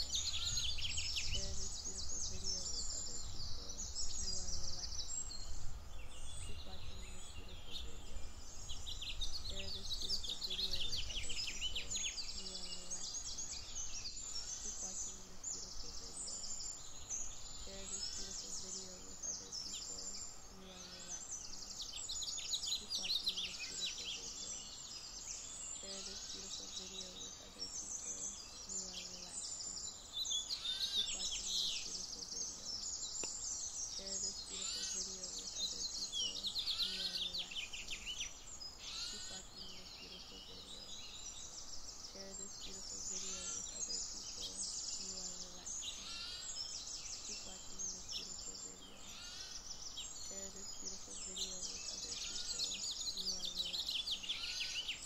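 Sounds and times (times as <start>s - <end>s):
chorus of songbirds singing: 0.0s - 55.0s.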